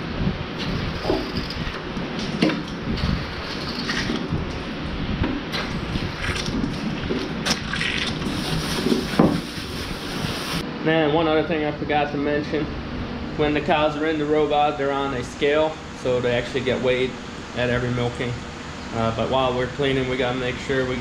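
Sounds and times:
water spraying from hose: 0:07.4 - 0:10.6.

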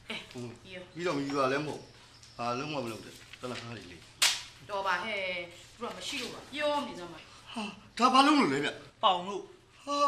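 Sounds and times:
sharp crack: 0:04.2 - 0:04.6.

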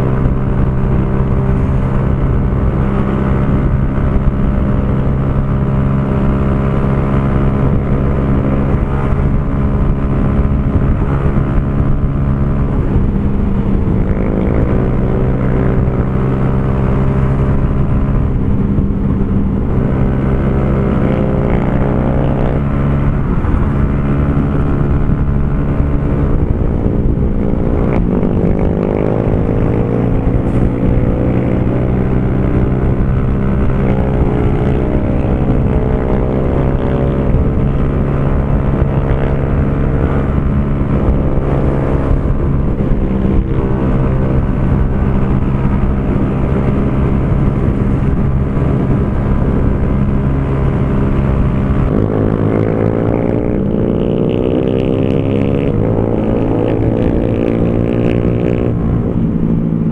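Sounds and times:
motorcycle engine at high revs: 0:00.0 - 0:59.9.

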